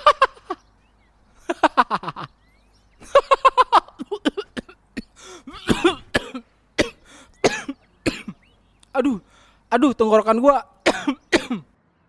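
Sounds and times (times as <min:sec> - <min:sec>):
man coughing hard: 0:03.9 - 0:09.2, 0:10.8 - 0:11.7.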